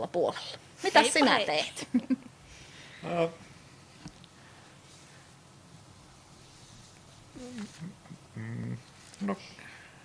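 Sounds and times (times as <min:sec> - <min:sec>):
person humming: 0:07.4 - 0:09.6.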